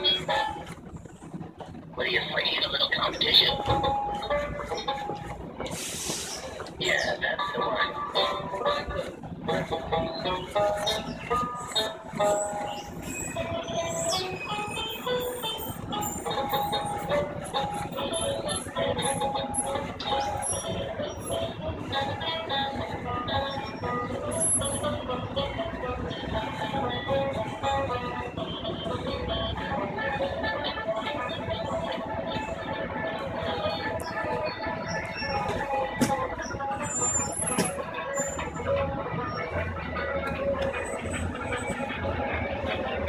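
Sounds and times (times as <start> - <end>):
plucked banjo music from speaker: 0.0 - 43.0.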